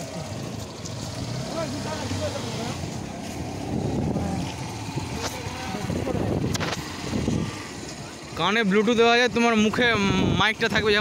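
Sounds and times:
road and wind noise: 0:00.0 - 0:11.0
vehicle engine running: 0:00.0 - 0:11.0.

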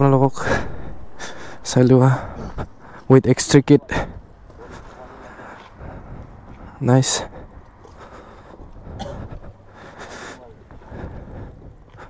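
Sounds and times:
faint voices: 0:00.0 - 0:12.0
low steady background rumble: 0:00.0 - 0:12.0.

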